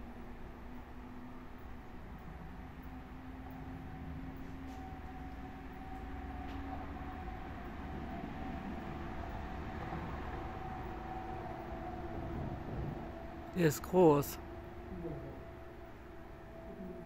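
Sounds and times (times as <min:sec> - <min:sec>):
faint constant hum: 0:00.0 - 0:17.0
distant low rumble: 0:01.0 - 0:13.5.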